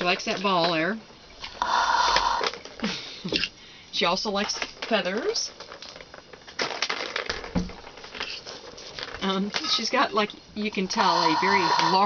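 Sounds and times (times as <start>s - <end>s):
cat playing with rattling toys: 4.0s - 11.0s.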